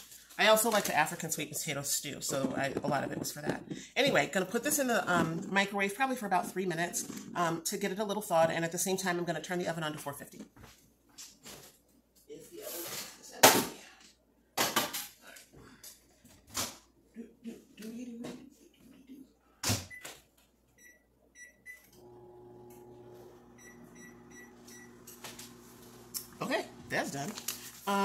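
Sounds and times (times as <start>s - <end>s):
keypad beeps: 20.8s - 21.9s, 23.6s - 24.9s
microwave humming: 21.8s - 28.0s.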